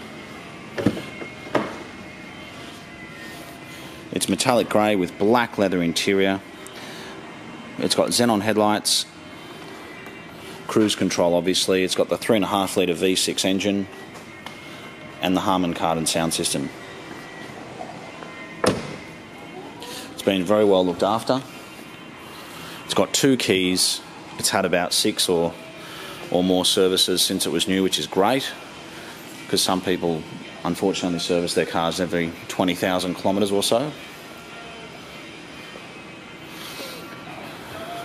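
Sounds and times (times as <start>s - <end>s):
faint music: 0.0s - 38.0s
steady background noise: 0.0s - 38.0s.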